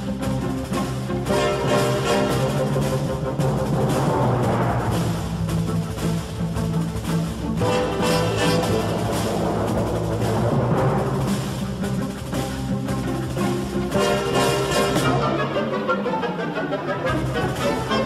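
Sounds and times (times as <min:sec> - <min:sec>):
steady drum beat: 0:00.0 - 0:15.6
orchestral music: 0:00.0 - 0:18.0
timpani: 0:00.0 - 0:18.0.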